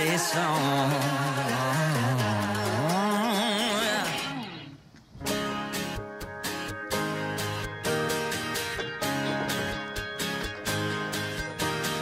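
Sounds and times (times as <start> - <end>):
background music: 0.0 - 4.6, 5.2 - 12.0
strummed guitar: 0.0 - 12.0.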